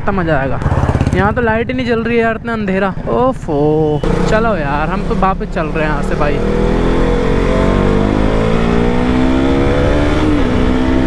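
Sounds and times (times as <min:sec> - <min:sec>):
motorcycle engine running: 0:00.0 - 0:03.0, 0:04.0 - 0:11.0
person talking: 0:00.0 - 0:06.6.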